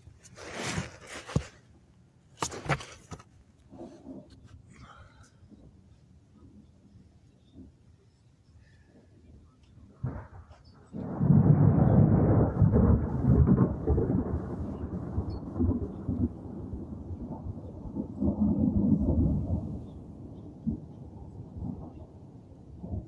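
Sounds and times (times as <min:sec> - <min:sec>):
sharp thunder cracks: 0:10.0 - 0:22.2
thunder rumbling: 0:10.0 - 0:23.0.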